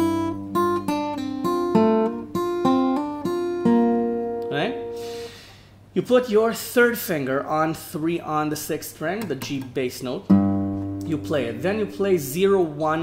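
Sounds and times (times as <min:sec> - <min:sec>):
fingerpicked acoustic guitar riff: 0:00.0 - 0:05.4, 0:10.3 - 0:12.8.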